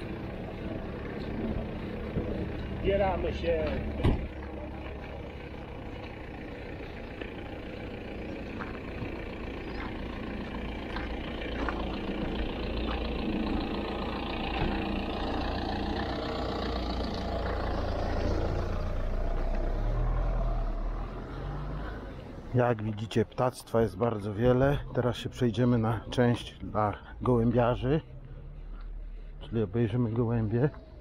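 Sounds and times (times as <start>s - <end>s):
car engine rumble: 0.0s - 31.0s.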